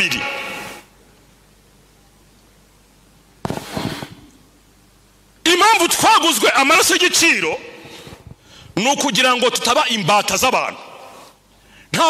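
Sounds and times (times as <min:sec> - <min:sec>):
room hum: 0:00.0 - 0:12.0
microphone handling bumps and crackle: 0:03.4 - 0:04.2, 0:07.8 - 0:08.4.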